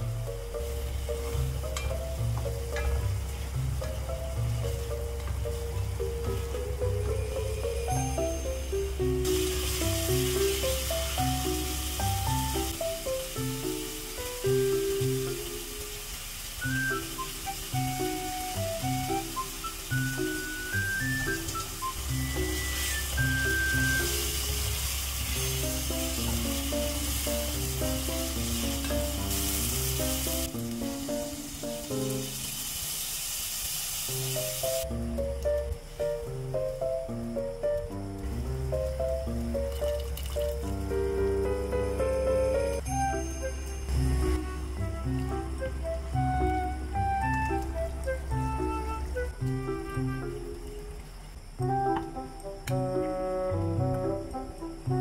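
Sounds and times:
background music with bass line: 0:00.0 - 0:15.6, 0:40.6 - 0:50.5
spice paste sizzling in a pot: 0:00.0 - 0:55.0.

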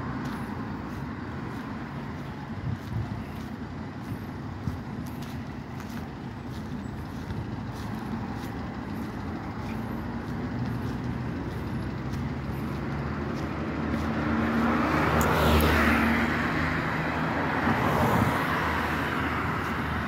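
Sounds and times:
approaching vehicle engine: 0:00.0 - 0:20.0
hum of road traffic: 0:00.0 - 0:20.0.

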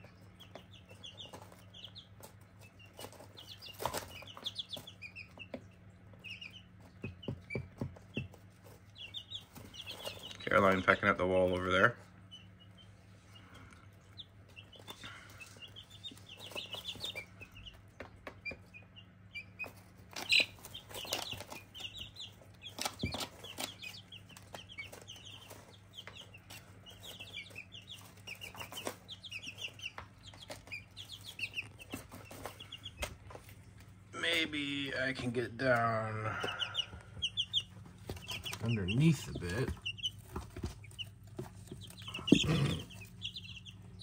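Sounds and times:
chicks cheeping: 0:00.0 - 0:44.0
low steady hum: 0:00.0 - 0:44.0.

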